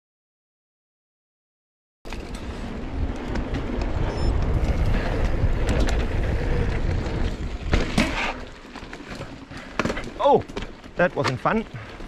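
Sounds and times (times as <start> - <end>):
bike rattling over roots: 2.1 - 12.0
tyres on dirt: 2.1 - 12.0
wind on microphone: 2.8 - 7.7.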